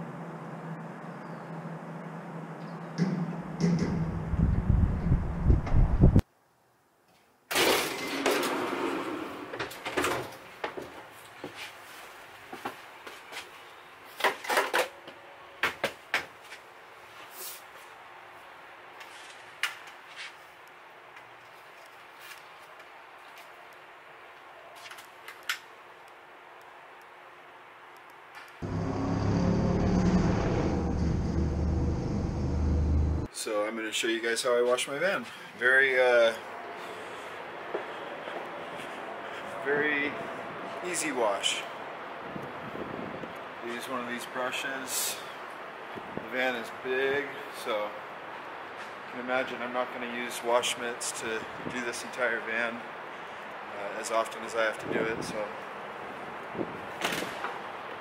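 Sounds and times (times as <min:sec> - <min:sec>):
loud rumbling noise: 0:28.6 - 0:33.3.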